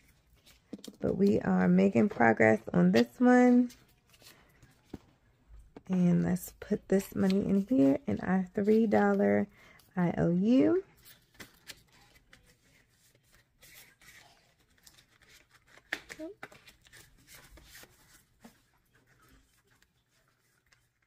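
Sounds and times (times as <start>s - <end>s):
paper rustling and crinkling: 0.0s - 5.3s, 10.9s - 21.0s.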